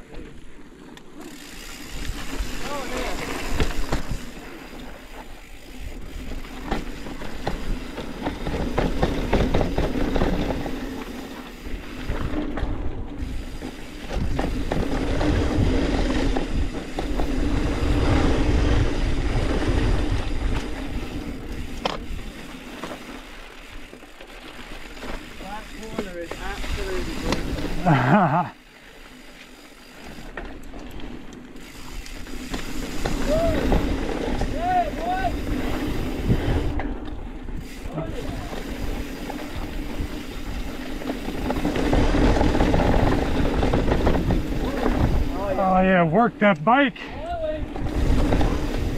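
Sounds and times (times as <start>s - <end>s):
bike tyre and drivetrain rumble: 0.0s - 48.9s
wind noise on microphone: 11.7s - 21.9s, 33.0s - 45.5s, 47.1s - 48.9s.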